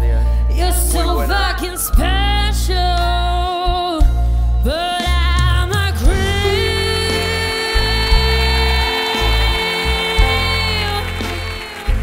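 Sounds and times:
pulsing bass: 0.0s - 12.0s
live band playing: 0.6s - 12.0s
woman singing long held note: 6.4s - 12.0s.

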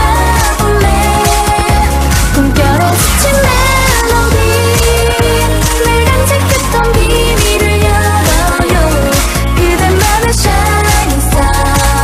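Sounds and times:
electronic pop backing: 0.0s - 12.0s
woman singing: 0.0s - 12.0s.

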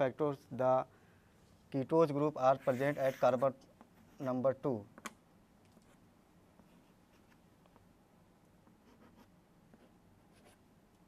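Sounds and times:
chalk scratching on blackboard: 2.4s - 4.4s, 8.8s - 10.6s.

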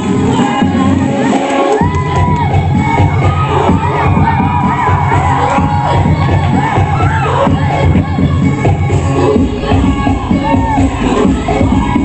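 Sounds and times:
shouted chanting vocals: 0.0s - 12.0s
upbeat dance music: 0.0s - 12.0s.

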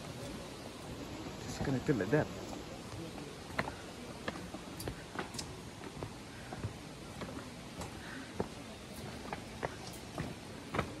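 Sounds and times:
footsteps on wooden bridge planks: 0.1s - 11.0s.

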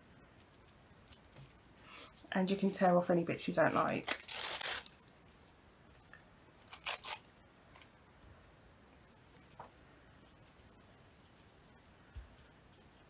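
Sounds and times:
paper doily rustling and tearing: 3.4s - 5.5s, 6.6s - 7.9s.

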